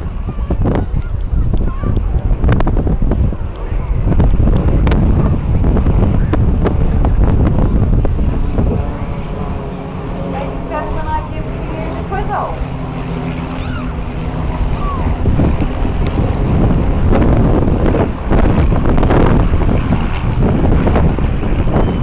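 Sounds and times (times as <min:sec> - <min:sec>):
jet engines roaring overhead: 0:00.0 - 0:22.0
wind buffeting microphone: 0:00.0 - 0:22.0.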